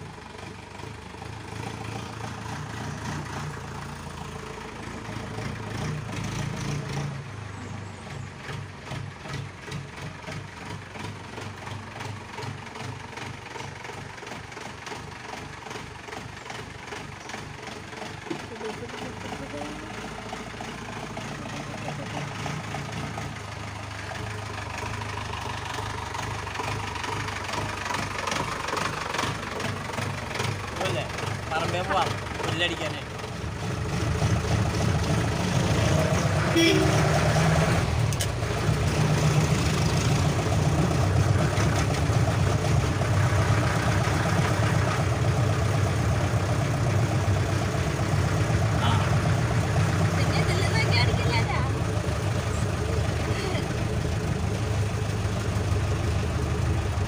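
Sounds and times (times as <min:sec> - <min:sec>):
jeep engine running and revving: 0:00.0 - 0:57.0.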